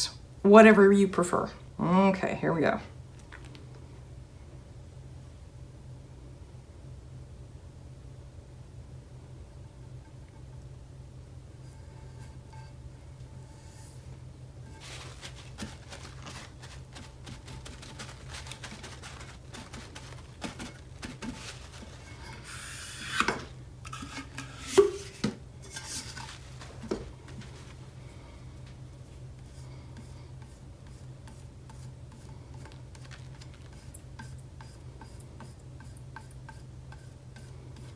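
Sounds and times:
steady low hum: 0:00.0 - 0:37.9
paper towel rubbing and dabbing: 0:13.4 - 0:23.3, 0:23.9 - 0:28.1, 0:29.1 - 0:37.9
small scrapes and clicks: 0:30.0 - 0:37.9.

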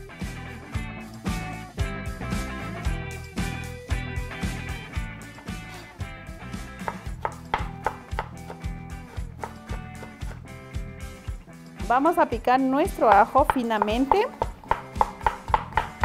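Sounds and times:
music with steady beat: 0:00.0 - 0:11.9, 0:12.9 - 0:16.0
knife chopping on plastic board: 0:06.8 - 0:10.4, 0:13.0 - 0:16.0.

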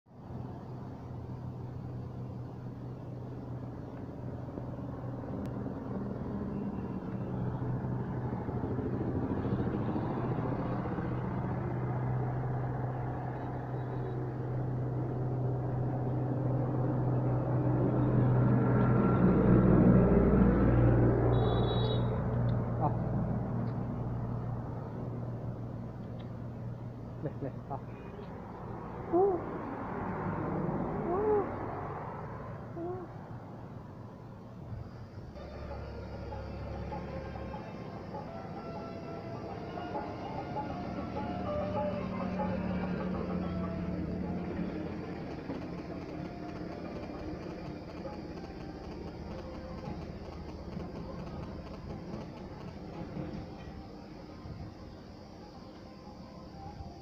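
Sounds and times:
vehicle engine passing: 0:00.2 - 0:54.6.

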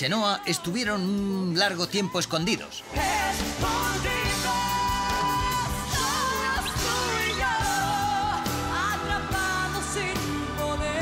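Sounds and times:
band accompaniment: 0:02.8 - 0:11.0
man and woman singing duet: 0:02.8 - 0:11.0.

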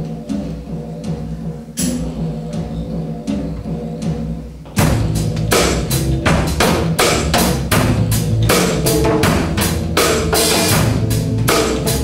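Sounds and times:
band playing with drum kit: 0:00.0 - 0:12.0.

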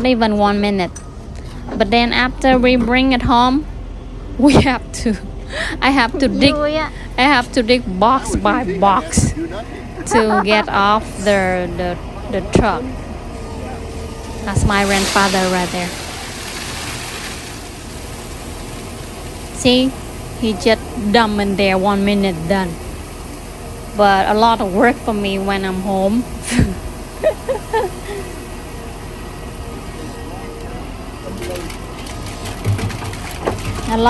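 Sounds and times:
diesel engine running: 0:00.0 - 0:34.0
pumice pouring hiss: 0:14.6 - 0:20.4
pumice pouring into truck bed: 0:14.8 - 0:18.8, 0:31.3 - 0:34.0.

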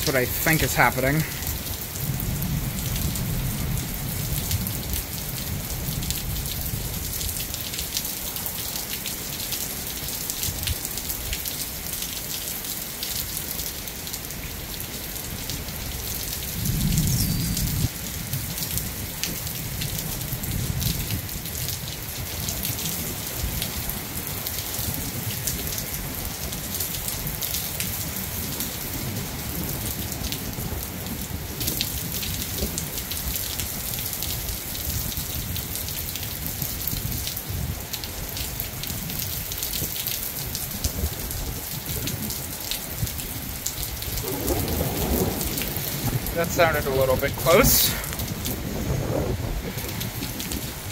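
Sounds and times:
heavy rain falling: 0:00.0 - 0:50.9
thunder rumbling: 0:16.4 - 0:21.3, 0:43.0 - 0:50.9.

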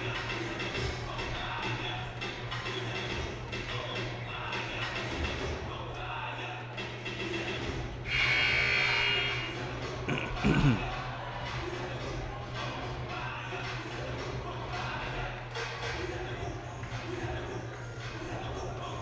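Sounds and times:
murmur of voices: 0:00.0 - 0:19.0
music: 0:00.0 - 0:19.0
scoreboard horn buzzing: 0:08.0 - 0:09.8.

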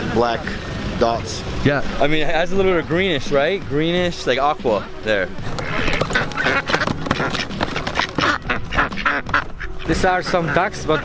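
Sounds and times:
ducks quacking: 0:04.7 - 0:11.0.

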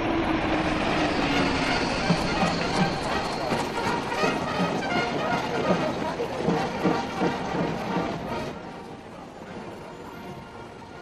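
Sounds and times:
jet aircraft roaring overhead: 0:00.0 - 0:04.8.

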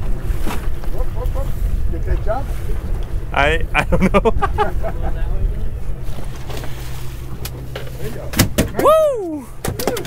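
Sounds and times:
wind on microphone: 0:00.0 - 0:06.3
boat engine rumbling: 0:00.0 - 0:10.0.

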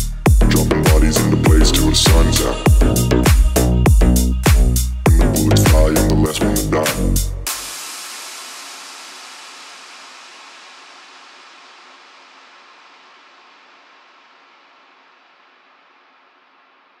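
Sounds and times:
electronic noise hiss: 0:07.5 - 0:17.0.

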